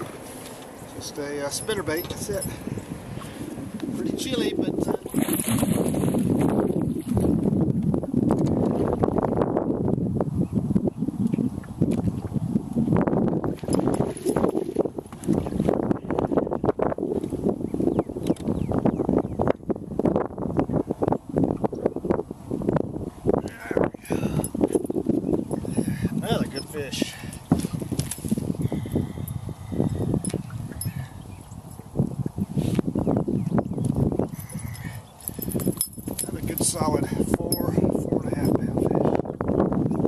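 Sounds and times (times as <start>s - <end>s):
wind rumbling on microphone: 0.0s - 40.0s.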